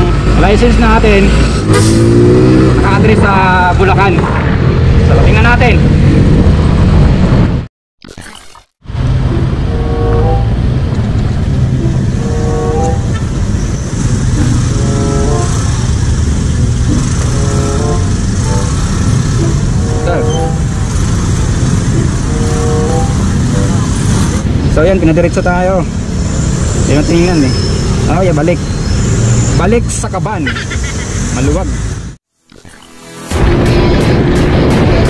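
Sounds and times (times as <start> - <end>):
road noise: 0.0 - 7.7, 8.8 - 32.2, 33.0 - 35.0
short tonal notes: 8.9 - 16.0, 16.6 - 24.2
motorcycle engine: 8.9 - 24.8.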